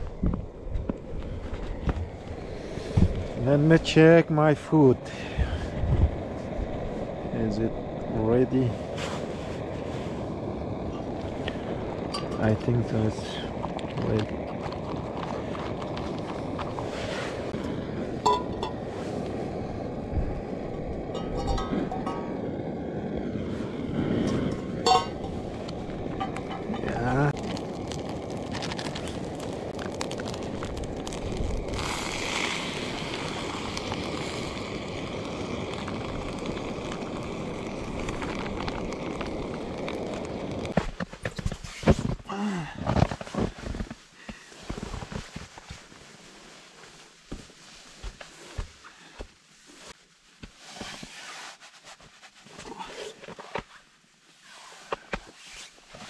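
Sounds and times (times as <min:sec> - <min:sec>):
camp stove flame rushing: 0:00.0 - 0:56.0
metal pot clinks: 0:21.1 - 0:22.3, 0:24.4 - 0:25.3.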